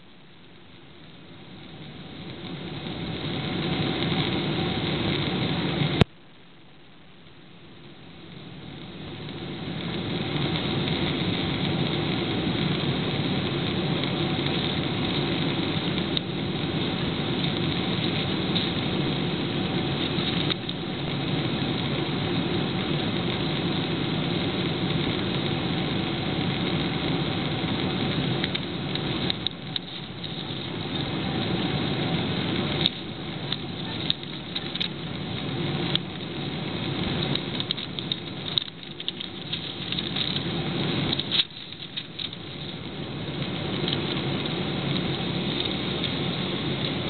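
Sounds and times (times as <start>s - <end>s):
jet engines and airflow rushing: 0.0s - 6.1s, 7.4s - 47.0s.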